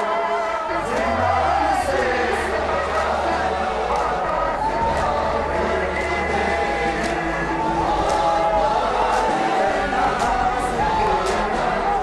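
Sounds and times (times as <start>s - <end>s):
chorus chanting: 0.0s - 12.0s.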